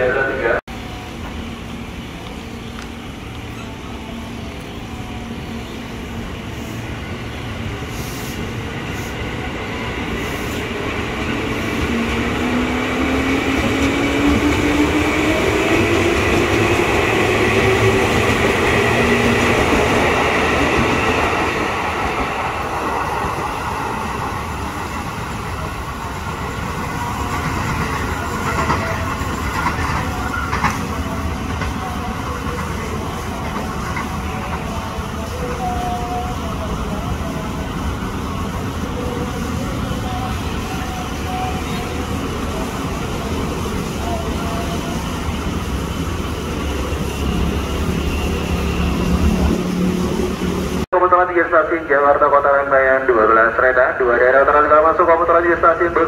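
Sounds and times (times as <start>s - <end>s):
wheels rumbling on rail: 0.1s - 50.9s.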